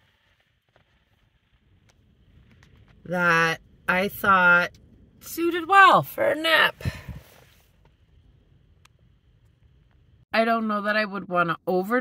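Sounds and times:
faint low rumble: 0:00.0 - 0:11.6.

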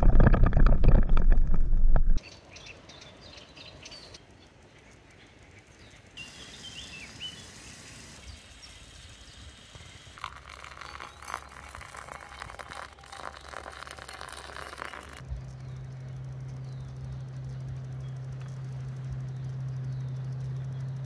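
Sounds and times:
low steady hum: 0:00.0 - 0:21.0
bird chirps: 0:02.2 - 0:11.8, 0:14.8 - 0:21.0
water pouring into coffee filter: 0:10.1 - 0:15.2.

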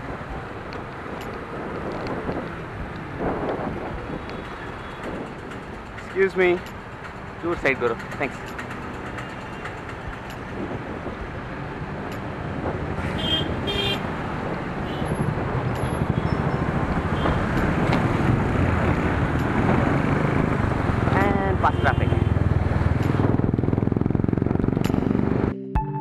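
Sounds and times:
wind noise on microphone: 0:00.0 - 0:25.5
motorcycle and car engines: 0:00.0 - 0:25.6.

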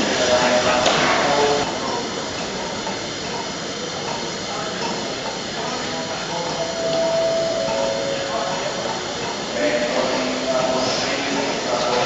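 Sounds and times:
steam locomotive hissing steam: 0:00.0 - 0:12.0.

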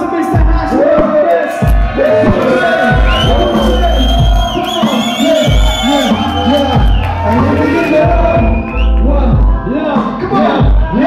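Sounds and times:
high whistling tone: 0:03.0 - 0:07.2.

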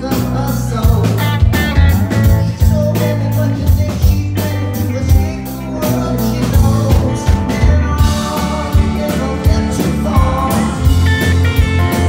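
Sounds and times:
live rock band playing: 0:00.0 - 0:12.0
man singing: 0:00.0 - 0:12.0.

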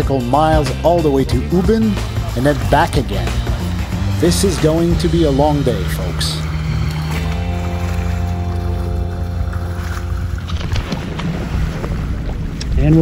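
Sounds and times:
held chord notes: 0:00.0 - 0:11.1
steady low bass: 0:00.0 - 0:13.0.

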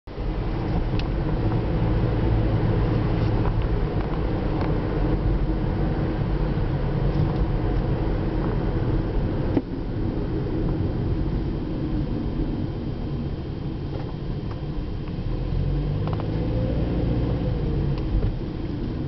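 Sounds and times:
car engine and tyres rumbling: 0:00.0 - 0:19.0.

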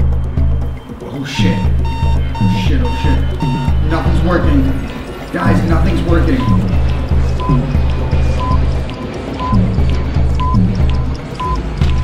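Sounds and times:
electronic film score with pulsing bass: 0:00.0 - 0:12.0
repeating electronic alert beep: 0:00.4 - 0:06.8, 0:07.4 - 0:07.8, 0:08.4 - 0:09.7, 0:10.4 - 0:12.0.

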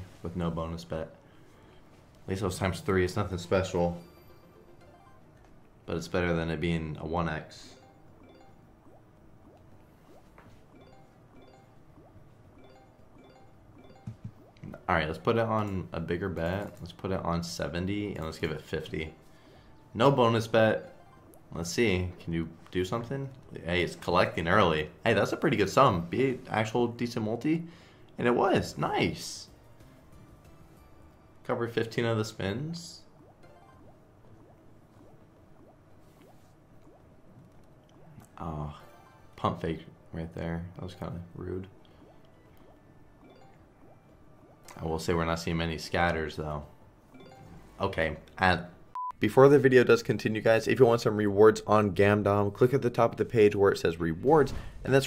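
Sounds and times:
looping plucked game music: 0:00.7 - 0:26.6, 0:27.7 - 0:49.1.

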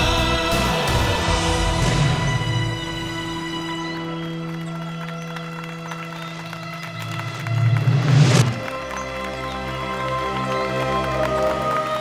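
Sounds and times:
dramatic orchestral score: 0:00.0 - 0:12.0.

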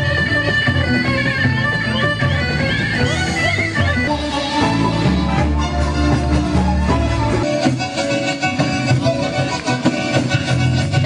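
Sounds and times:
folk dance music with fiddle: 0:00.0 - 0:11.0.

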